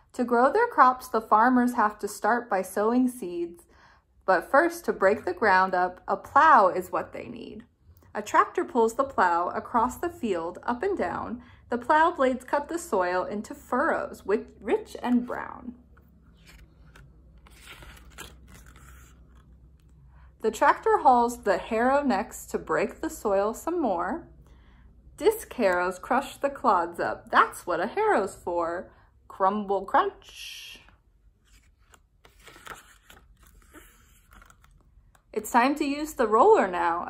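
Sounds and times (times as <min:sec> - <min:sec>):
book page turning: 0:15.1 - 0:20.0, 0:31.3 - 0:35.3.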